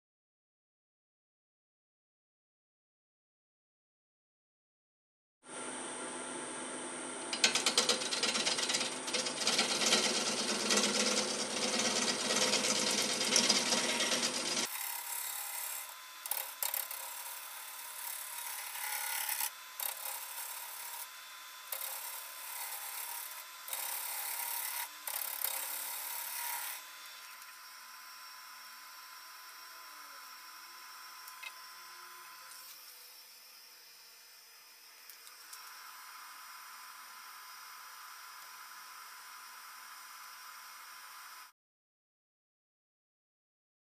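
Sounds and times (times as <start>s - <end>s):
gouge cutting wood on lathe: 7.4s - 27.2s.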